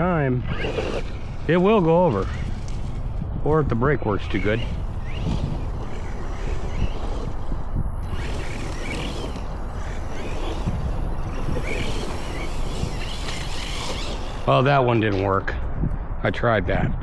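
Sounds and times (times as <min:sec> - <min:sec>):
distant electric motor whine: 0:00.0 - 0:15.4
wind on microphone: 0:00.0 - 0:17.0.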